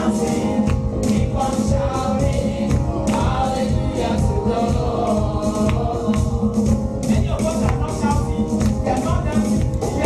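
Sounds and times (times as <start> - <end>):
women singing gospel song: 0.0 - 7.1
bass and percussion beat: 0.0 - 10.0.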